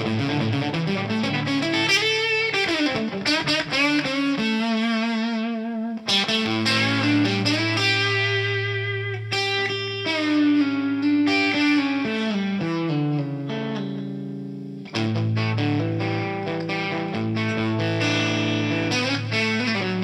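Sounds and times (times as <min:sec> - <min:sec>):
overdriven electric guitar: 0:00.0 - 0:20.0.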